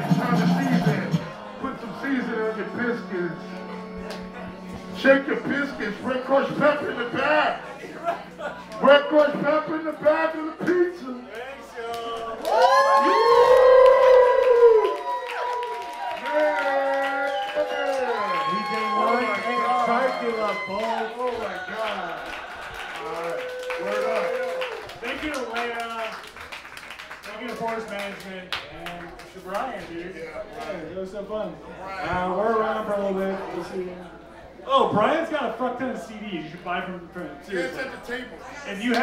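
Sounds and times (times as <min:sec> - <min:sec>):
people talking: 0:00.0 - 0:12.4, 0:16.3 - 0:22.2
crowd cheering: 0:06.2 - 0:29.1
loud vocal whoop: 0:12.4 - 0:21.1.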